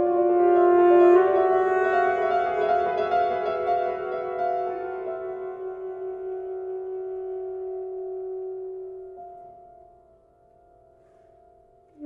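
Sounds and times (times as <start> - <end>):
piano: 0.0 - 12.0.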